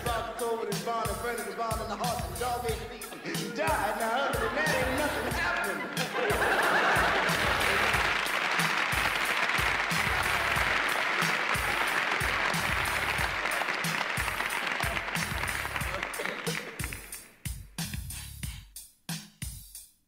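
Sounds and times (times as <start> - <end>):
hip-hop drum beat: 0.0 - 20.0
audience applauding: 3.2 - 17.4.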